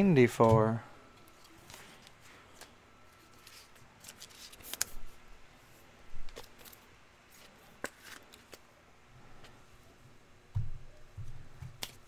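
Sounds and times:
cards rustling: 0.3 - 5.2, 6.2 - 8.7
cards clicking: 3.3 - 5.0.

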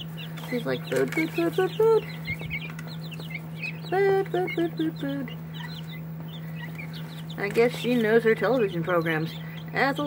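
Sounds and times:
chicks peeping: 0.0 - 10.0
steady low hum: 0.0 - 10.0.

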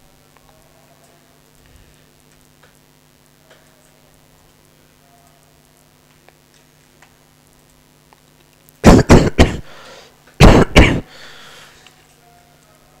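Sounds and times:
person coughing: 8.8 - 9.8, 10.4 - 11.3.

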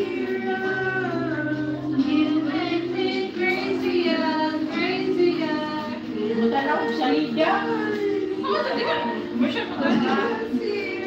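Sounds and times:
music backing track: 0.0 - 11.0
person singing into microphone: 0.0 - 11.0.

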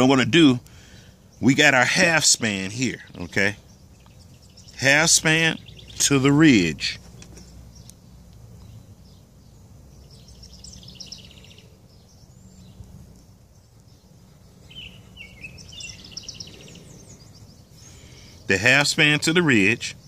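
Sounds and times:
bird chirping: 0.0 - 20.0
low background hum: 0.0 - 20.0.

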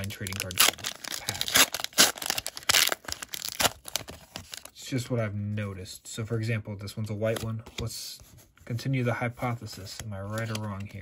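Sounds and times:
foil wrapper tearing and crinkling: 0.0 - 4.7.

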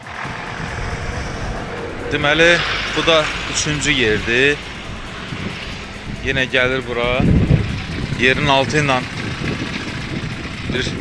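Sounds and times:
low rumble: 0.0 - 10.6
outdoor background noise: 0.0 - 11.0.

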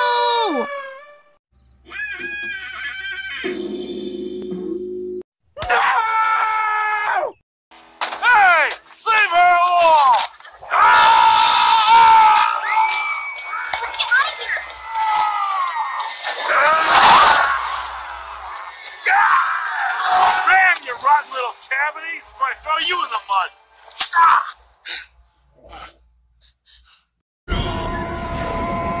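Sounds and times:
music: 17.1 - 24.4.

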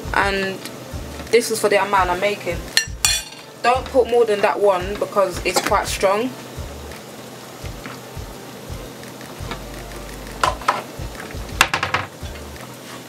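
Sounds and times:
pot hissing on gas hob: 0.0 - 13.0.

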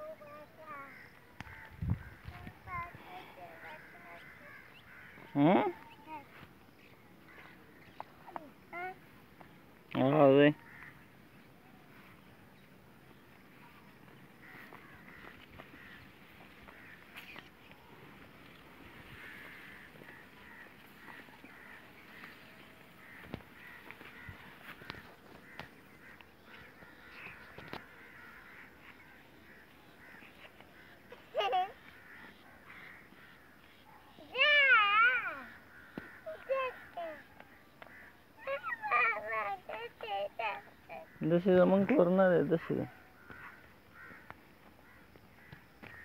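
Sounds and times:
footsteps: 13.5 - 30.9
girl making wavering calls: 38.4 - 41.0.

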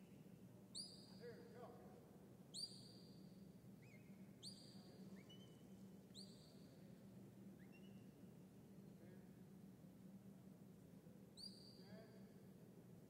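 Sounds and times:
high steady whistles: 0.0 - 1.2, 2.5 - 6.9, 7.6 - 8.2, 11.4 - 12.0
low steady hum: 0.0 - 13.0.

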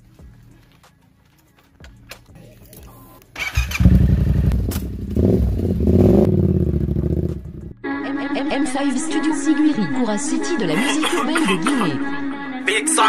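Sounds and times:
motorcycle engine starting and revving: 3.4 - 7.8.

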